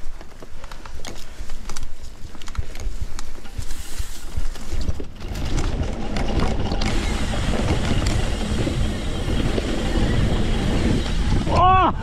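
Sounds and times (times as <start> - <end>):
tyres rolling on dirt trail: 0.0 - 12.0
wind buffeting microphone: 1.9 - 12.0.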